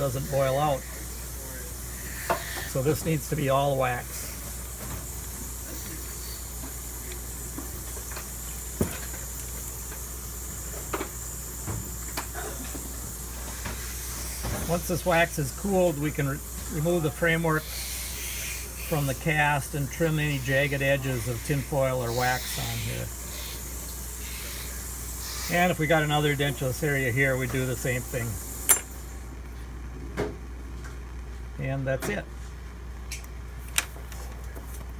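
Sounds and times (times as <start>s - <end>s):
steady hiss: 0.0s - 29.3s.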